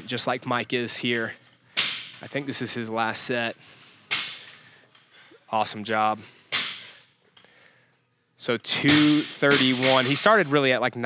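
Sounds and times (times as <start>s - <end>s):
barbell plates clattering: 8.7s - 10.8s.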